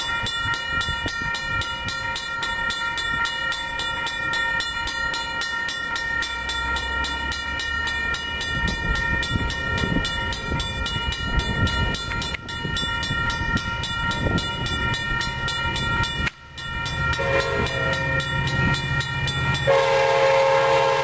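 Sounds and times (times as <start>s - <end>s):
passenger train rumbling: 0.0s - 21.0s.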